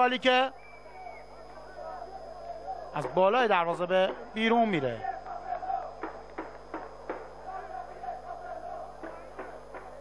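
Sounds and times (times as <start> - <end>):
faint stadium ambience: 0.0 - 10.0
steady held tone: 0.0 - 10.0.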